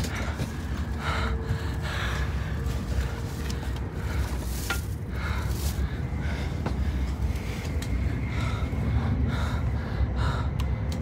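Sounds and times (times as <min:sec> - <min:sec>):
train cabin rumble: 0:00.0 - 0:11.0.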